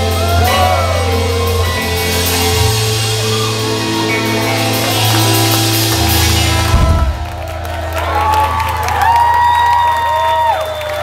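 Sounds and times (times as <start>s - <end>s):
live rock band: 0.0s - 10.9s
audience whooping and cheering: 0.0s - 11.0s
low bass note ringing: 5.3s - 8.1s.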